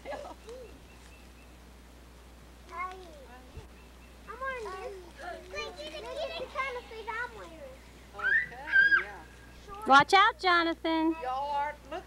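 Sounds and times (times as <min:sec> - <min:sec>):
child's high-pitched calls: 0:08.2 - 0:09.2.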